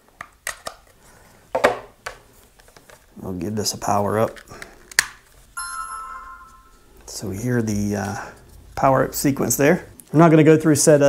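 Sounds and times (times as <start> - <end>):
electronic power-up chime: 5.6 - 6.9.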